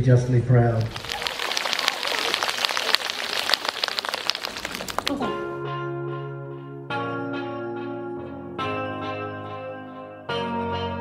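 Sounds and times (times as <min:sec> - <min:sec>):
crowd applauding: 0:00.8 - 0:05.3.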